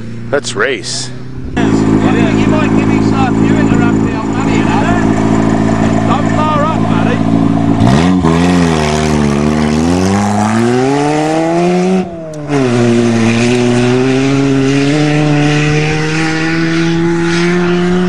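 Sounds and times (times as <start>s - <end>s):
car engine idling and revving: 0.0s - 18.0s.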